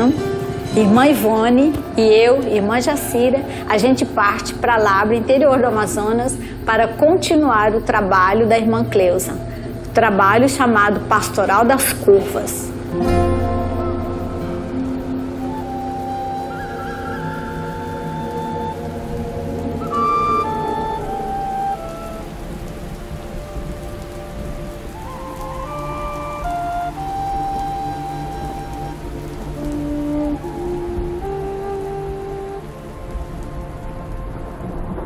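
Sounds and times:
rain falling on water: 0:00.0 - 0:35.0
slow background music: 0:00.0 - 0:35.0.

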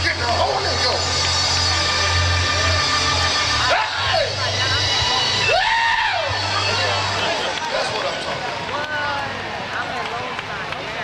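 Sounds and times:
gospel band low sustained note: 0:00.0 - 0:09.1
voices crying out: 0:02.7 - 0:08.3.

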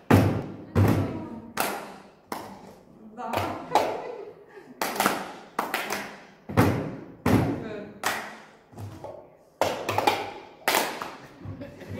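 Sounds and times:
hand claps: 0:01.5 - 0:02.7, 0:04.7 - 0:06.4, 0:08.0 - 0:08.6, 0:09.6 - 0:11.4.

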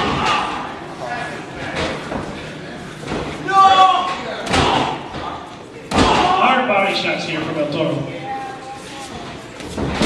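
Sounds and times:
people shouting: 0:00.0 - 0:00.8, 0:03.4 - 0:05.2, 0:05.9 - 0:06.6
echoing wrestling strike impacts: 0:04.4 - 0:06.4.

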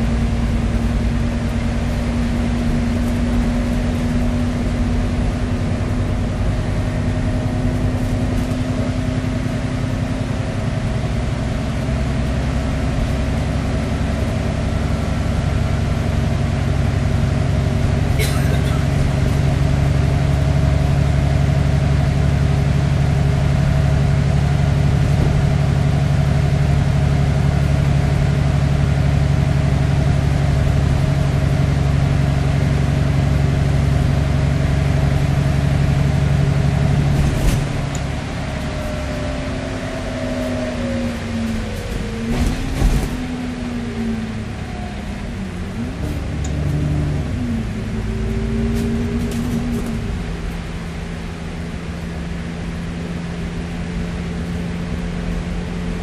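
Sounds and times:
bus engine droning: 0:00.0 - 0:56.0
whines of bus slowing: 0:00.0 - 0:56.0
bus body knocks and rattles: 0:36.4 - 0:38.8, 0:41.8 - 0:43.6.

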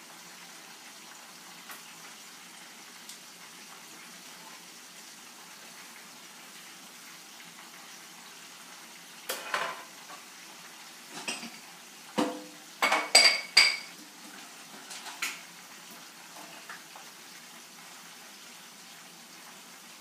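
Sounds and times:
fish sizzling in oil: 0:00.0 - 0:20.0.

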